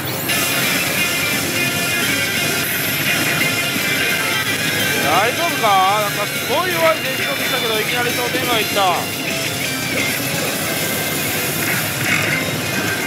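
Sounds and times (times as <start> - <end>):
gliding electronic tones: 0.0 - 13.0
pachinko parlor din: 0.0 - 13.0
slot machine music and effects: 0.0 - 13.0.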